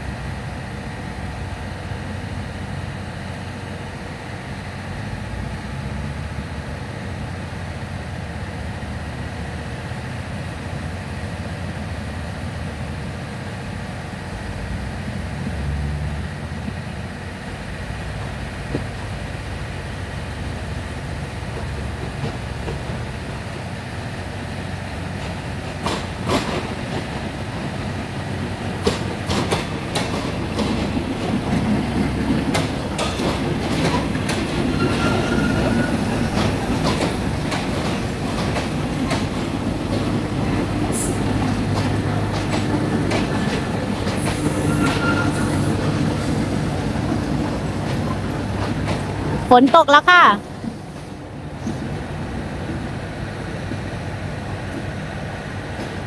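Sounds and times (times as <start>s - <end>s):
diesel train engine rumbling: 0.0s - 56.0s
wheels clicking over rail joints: 25.1s - 52.0s
short metallic squeals: 34.7s - 36.2s, 44.4s - 45.8s.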